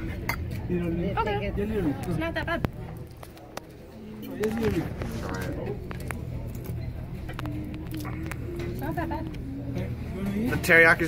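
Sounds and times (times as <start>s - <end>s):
steady low hum: 0.0s - 11.0s
voices: 0.0s - 11.0s.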